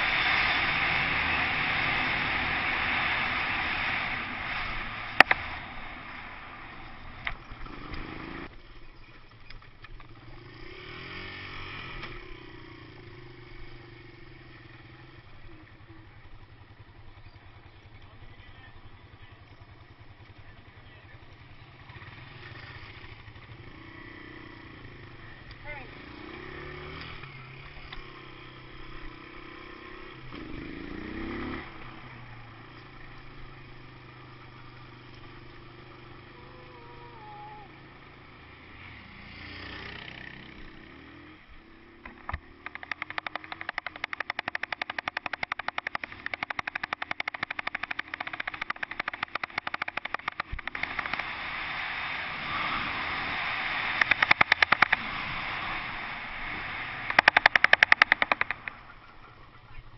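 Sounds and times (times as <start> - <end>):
motorcycle engine revving: 0.0 - 8.6, 10.0 - 59.9.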